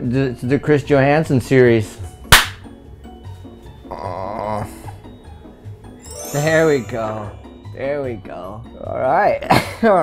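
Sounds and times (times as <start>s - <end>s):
background music with low riff: 0.0s - 10.0s
sharp crack: 2.3s - 2.6s.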